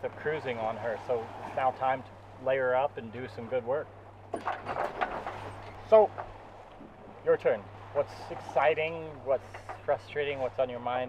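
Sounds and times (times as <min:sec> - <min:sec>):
boat engine drone: 0:00.0 - 0:10.9.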